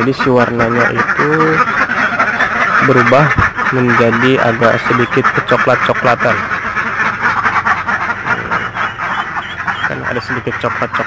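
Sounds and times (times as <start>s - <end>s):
ducks quacking: 0.0s - 11.0s
higher short duck calls: 0.0s - 11.0s.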